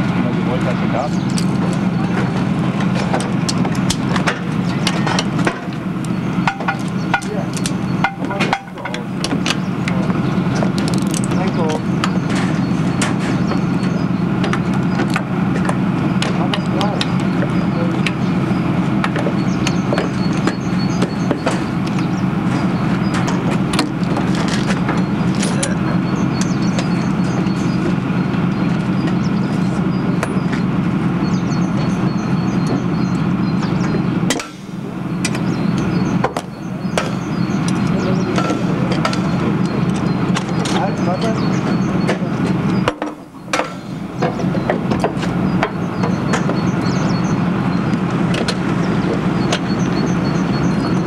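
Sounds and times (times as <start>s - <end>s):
vehicle engine running: 0.0s - 51.0s.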